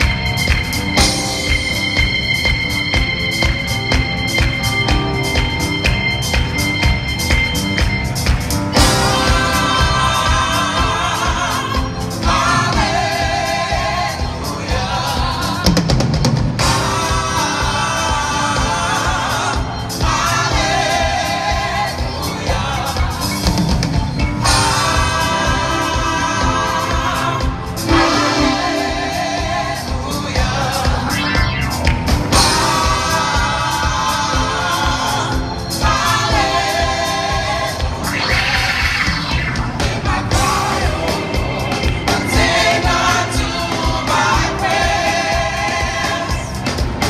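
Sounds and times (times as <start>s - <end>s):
band with steady drum beat: 0.0s - 47.0s
gospel choir singing in harmony: 0.0s - 47.0s.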